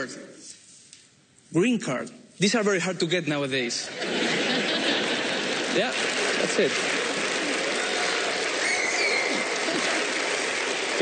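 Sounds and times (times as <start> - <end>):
audience laughing: 3.9 - 8.3, 9.1 - 11.0
audience applauding: 4.0 - 11.0.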